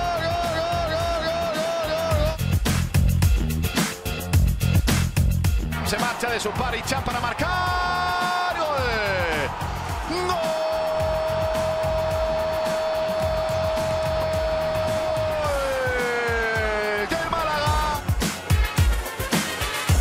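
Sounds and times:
backing music with steady beat: 0:00.0 - 0:20.0.

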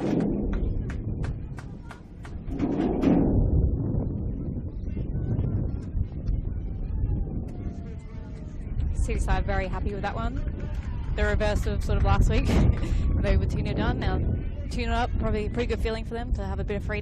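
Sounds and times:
steady low rumble: 0:00.0 - 0:17.0
scattered handclaps: 0:00.2 - 0:02.6, 0:10.6 - 0:13.0.

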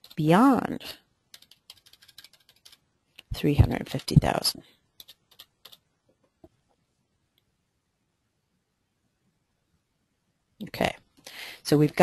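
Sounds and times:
computer keyboard typing: 0:00.0 - 0:00.4, 0:01.3 - 0:02.8, 0:05.0 - 0:05.8.

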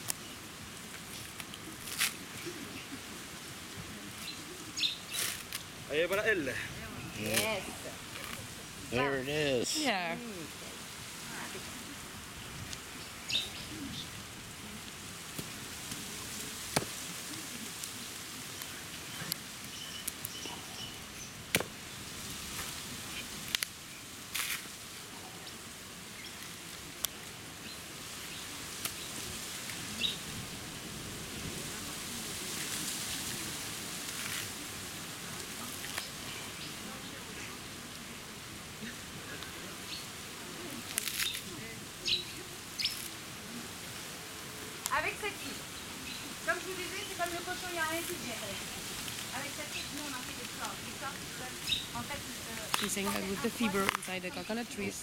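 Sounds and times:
steady outdoor hiss: 0:00.0 - 0:55.0
coconut husk cracking and knocking: 0:00.9 - 0:03.0, 0:03.8 - 0:06.3, 0:07.2 - 0:08.6, 0:14.8 - 0:20.4, 0:21.4 - 0:25.6, 0:28.6 - 0:30.2, 0:32.4 - 0:36.8, 0:40.6 - 0:44.0, 0:46.3 - 0:54.1
birds chirping: 0:04.0 - 0:10.0, 0:12.4 - 0:14.3, 0:17.9 - 0:22.1, 0:29.9 - 0:30.2, 0:38.8 - 0:40.2, 0:41.2 - 0:43.1, 0:44.9 - 0:55.0.

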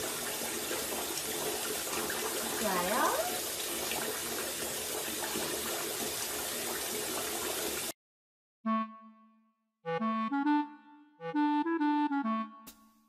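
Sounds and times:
tap running into bathtub: 0:00.0 - 0:07.9.

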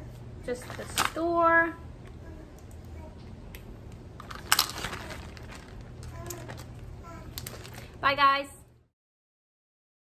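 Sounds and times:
plastic bag crinkling: 0:04.2 - 0:06.8, 0:07.4 - 0:08.0.

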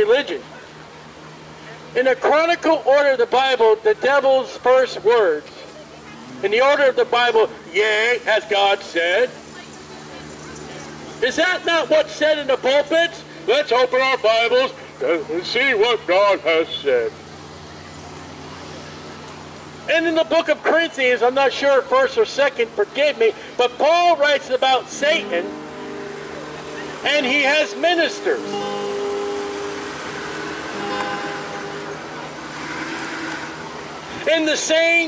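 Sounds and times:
cars driving past: 0:00.0 - 0:35.0
road traffic hiss and hum: 0:00.0 - 0:35.0
sustained music notes: 0:24.8 - 0:34.3.

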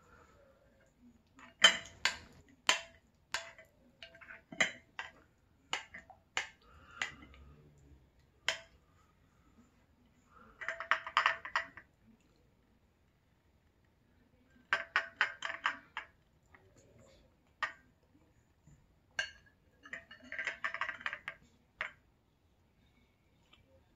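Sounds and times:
spoon clinking against glass bowl: 0:01.4 - 0:05.2, 0:19.2 - 0:21.4.

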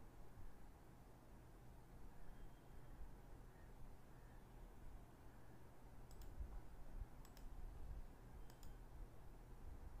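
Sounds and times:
low room hum: 0:00.0 - 0:10.0
faint sharp clicks: 0:06.0 - 0:06.6, 0:07.2 - 0:07.5, 0:08.4 - 0:08.8.

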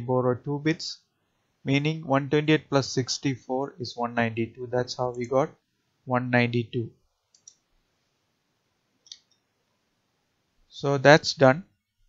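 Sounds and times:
faint computer clicks: 0:07.3 - 0:07.7.

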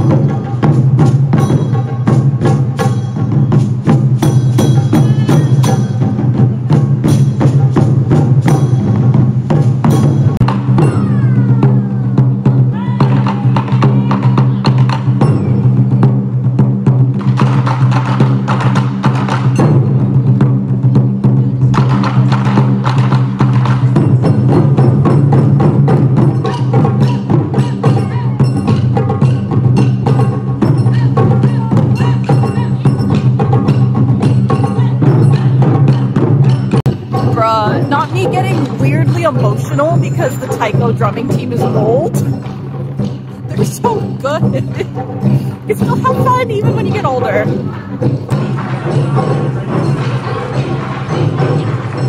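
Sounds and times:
taiko drums playing: 0:00.0 - 0:52.0.

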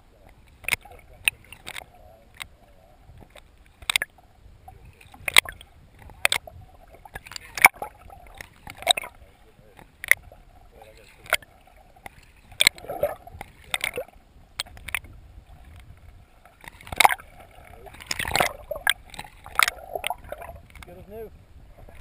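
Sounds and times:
water sloshing: 0:00.1 - 0:22.0
sharp water splashes: 0:05.0 - 0:15.1, 0:16.4 - 0:20.9.

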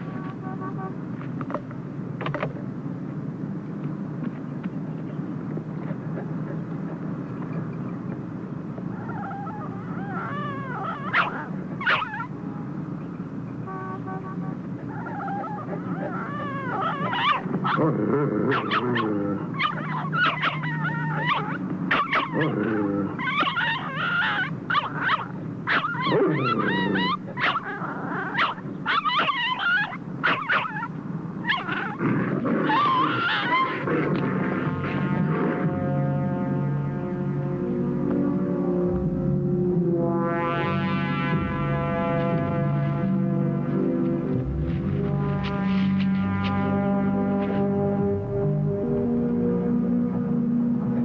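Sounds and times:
steady low hum: 0:00.0 - 0:51.0
dog growling: 0:08.9 - 0:12.3, 0:14.9 - 0:35.6
dog yelping and whimpering: 0:08.9 - 0:12.4, 0:14.8 - 0:17.9, 0:18.5 - 0:32.0, 0:32.6 - 0:34.1.

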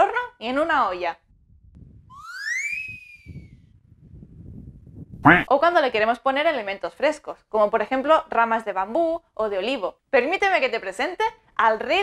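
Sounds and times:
rising and sinking whistle: 0:02.1 - 0:03.8.

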